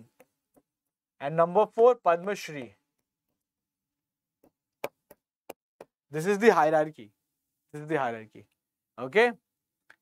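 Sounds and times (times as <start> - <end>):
pen tapping on writing board: 4.4 - 6.0.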